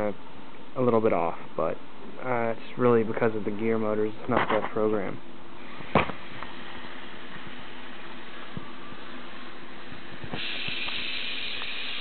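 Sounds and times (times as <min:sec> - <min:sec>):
high-pitched hiss: 0:05.6 - 0:12.0
small motors humming: 0:05.6 - 0:12.0.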